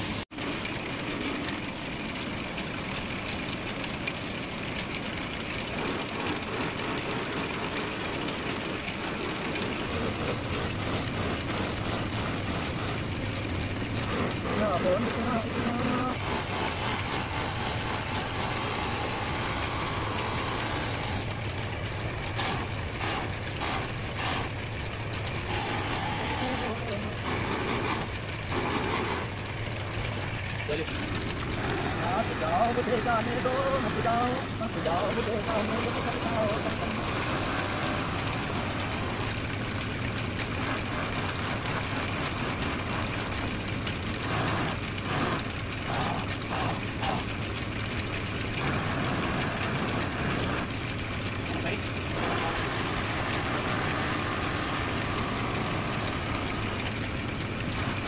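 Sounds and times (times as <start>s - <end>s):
buffing wheel humming: 0.0s - 58.0s
disc rubbing against wood: 4.8s - 39.8s, 40.4s - 58.0s.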